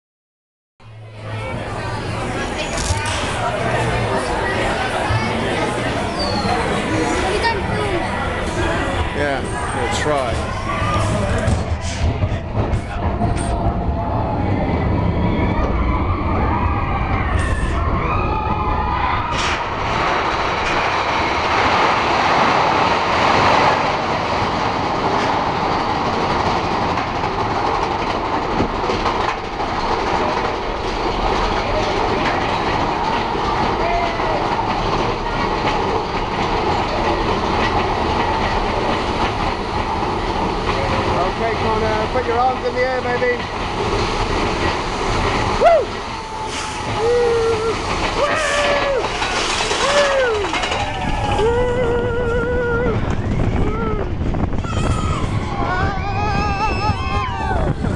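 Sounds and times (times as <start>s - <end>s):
roller coaster wheels rumbling on rail: 0.8s - 57.9s.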